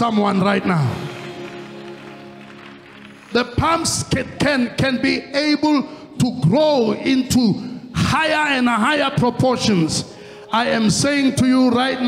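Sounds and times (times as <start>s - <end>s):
sustained instrumental chord: 0.0s - 6.1s.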